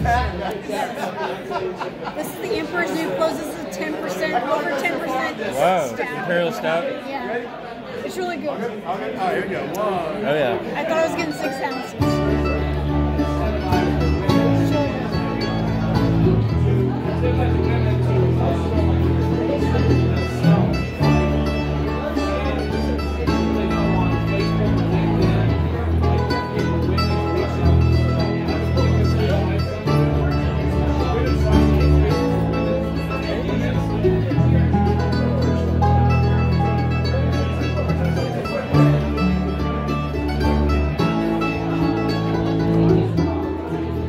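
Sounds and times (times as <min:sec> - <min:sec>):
upright bass: 0:00.0 - 0:00.7, 0:12.0 - 0:44.0
banjo: 0:00.0 - 0:06.8, 0:09.2 - 0:44.0
mandolin: 0:00.0 - 0:07.1, 0:07.9 - 0:44.0
acoustic guitar: 0:10.8 - 0:44.0.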